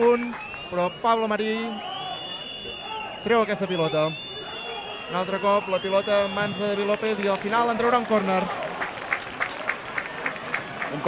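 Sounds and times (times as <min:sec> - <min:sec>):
people clapping: 0:00.0 - 0:04.0, 0:04.6 - 0:11.0
stadium crowd noise: 0:00.0 - 0:11.0.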